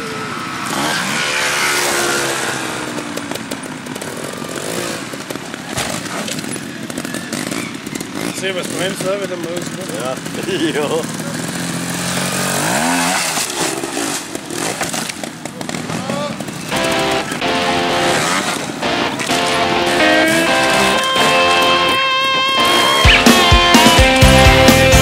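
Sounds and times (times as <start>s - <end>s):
motorcycle engine revving: 0.0s - 25.0s
music with held notes: 16.7s - 25.0s
rock beat with bass: 16.7s - 25.0s.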